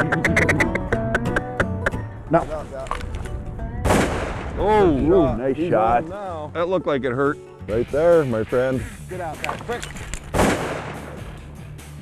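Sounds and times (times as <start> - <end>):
low background music: 0.0 - 12.0
shotgun shot: 3.8 - 4.7, 10.3 - 11.4.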